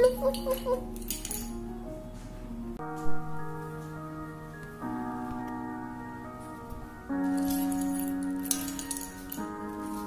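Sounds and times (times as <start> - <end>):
background music held chords: 0.0 - 10.0.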